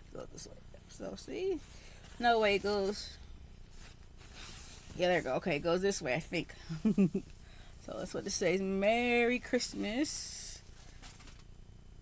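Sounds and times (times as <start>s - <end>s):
fabric apron rustling: 1.4s - 7.1s.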